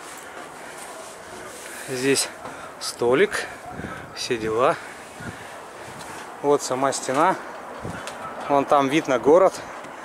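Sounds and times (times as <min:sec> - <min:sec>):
outdoor background hiss: 0:00.0 - 0:10.0
man speaking: 0:01.7 - 0:04.9.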